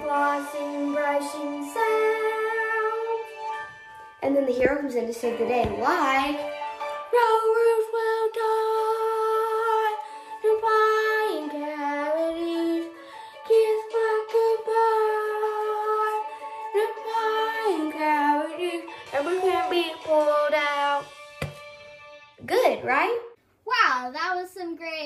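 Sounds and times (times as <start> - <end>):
girl singing wordless tune: 0.0 - 21.3.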